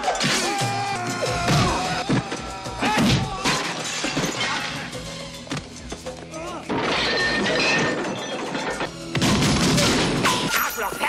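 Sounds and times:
background music: 0.0 - 11.0
glass shattering: 3.1 - 5.0, 6.6 - 11.0.

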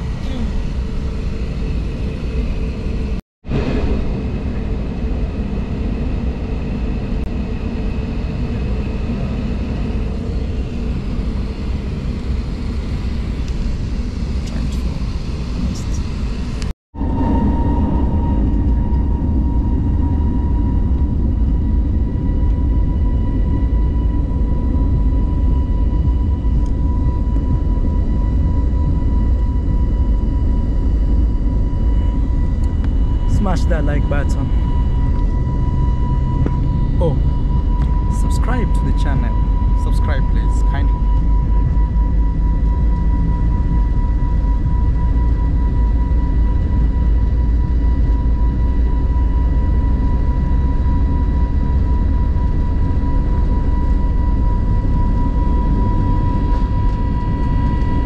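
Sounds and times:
jet engine cabin rumble: 0.0 - 58.0
steady engine whine: 0.0 - 58.0.

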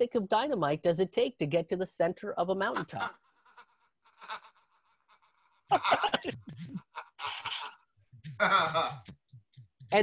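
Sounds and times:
man laughing: 8.3 - 9.1.

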